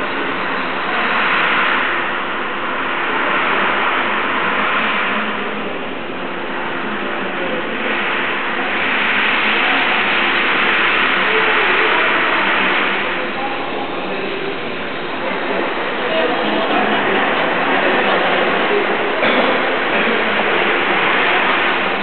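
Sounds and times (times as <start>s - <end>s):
rushing background noise: 0.0s - 22.0s.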